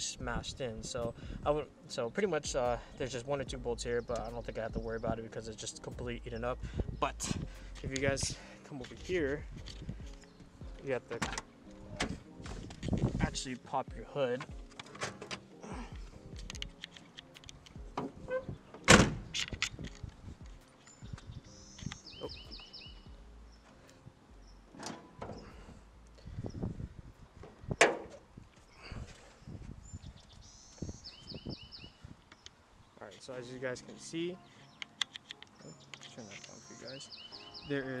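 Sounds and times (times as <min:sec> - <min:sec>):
car hood clicks and knocks: 0:11.1 - 0:13.0, 0:17.9 - 0:20.1, 0:27.4 - 0:28.2
car hood thunk: 0:18.8 - 0:19.3, 0:27.8 - 0:28.2.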